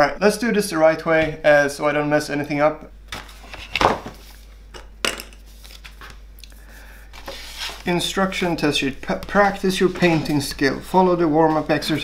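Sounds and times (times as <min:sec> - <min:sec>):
paper rustling and crinkling: 0:03.1 - 0:04.5, 0:05.4 - 0:06.3, 0:07.2 - 0:08.5.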